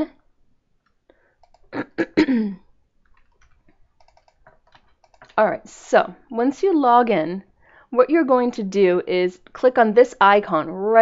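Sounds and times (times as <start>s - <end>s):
light keyboard typing: 0.8s - 1.8s, 3.0s - 5.4s
person clearing throat: 1.8s - 2.7s.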